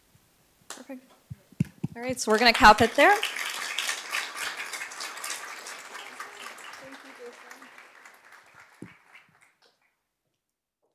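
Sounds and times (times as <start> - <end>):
audience applause: 2.2 - 9.9
crowd chatter: 4.5 - 8.1.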